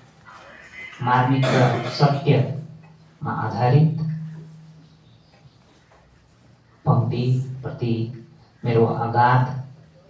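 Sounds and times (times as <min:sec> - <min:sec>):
man speaking into a microphone: 0:00.6 - 0:04.3.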